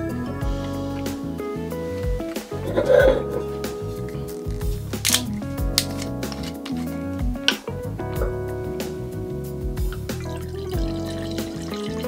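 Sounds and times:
background music: 0.0 - 12.0
screw cap clicking off bottle: 5.0 - 6.8.

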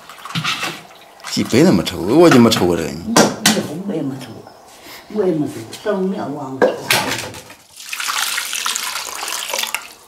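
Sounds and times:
water pouring into metal basin: 7.6 - 10.0.

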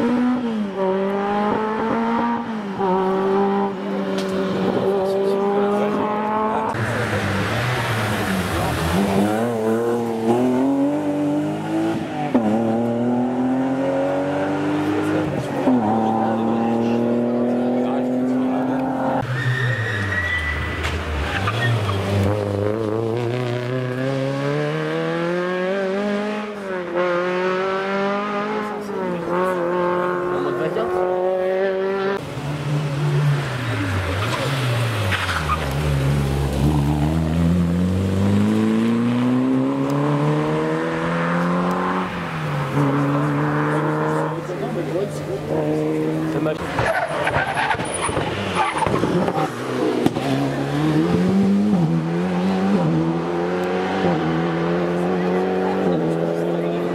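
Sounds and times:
rally car engines accelerating: 0.0 - 56.9.

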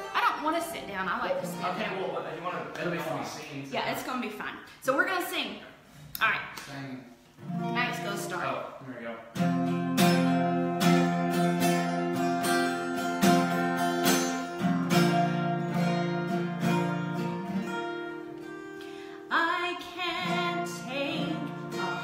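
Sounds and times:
acoustic guitar strumming chords: 0.0 - 3.2, 7.4 - 22.0
woman singing with vibrato: 19.2 - 22.0.

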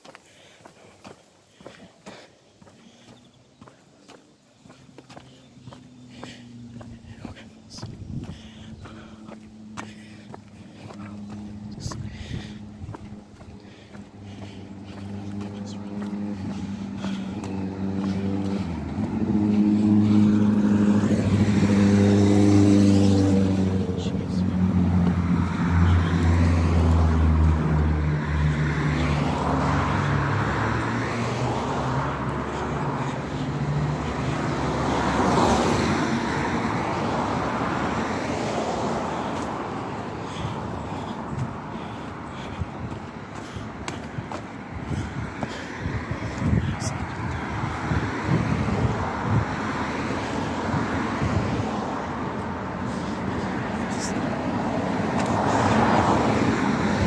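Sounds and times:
vehicle engine humming: 0.0 - 57.0
car passing by: 2.2 - 57.0.

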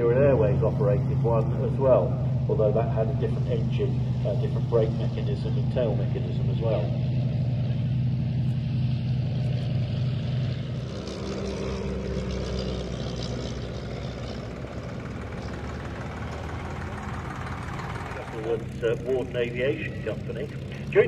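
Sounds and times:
propeller aircraft engine droning: 0.0 - 21.0.

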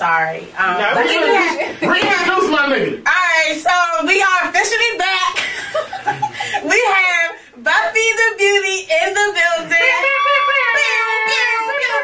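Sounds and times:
person's high-pitched held cry: 9.8 - 12.0.

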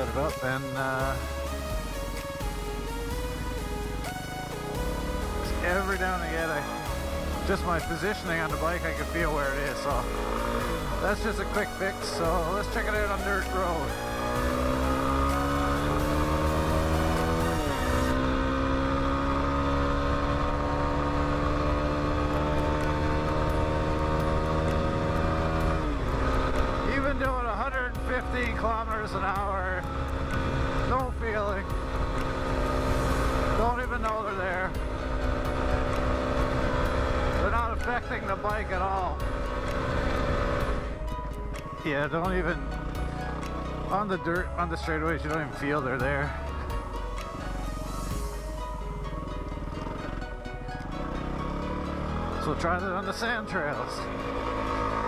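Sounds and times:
motorcycle engine pulling: 4.5 - 47.6, 49.0 - 55.0.

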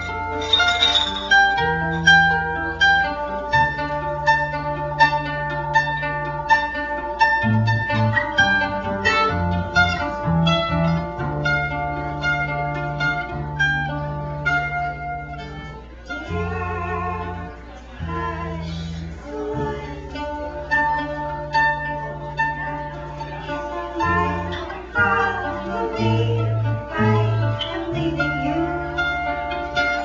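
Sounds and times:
acoustic guitar: 0.0 - 30.0
mandolin: 0.0 - 30.0.

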